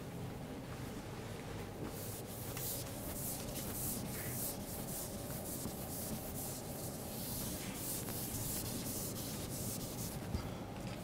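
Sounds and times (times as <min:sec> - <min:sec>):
scratchy rubbing on chalkboard: 0:02.0 - 0:10.3.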